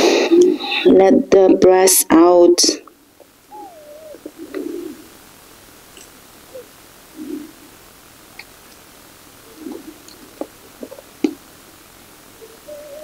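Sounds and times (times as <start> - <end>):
pigeon cooing: 3.4 - 5.2, 6.0 - 7.8, 9.4 - 11.4, 12.2 - 13.0
faint clicks: 8.3 - 8.9.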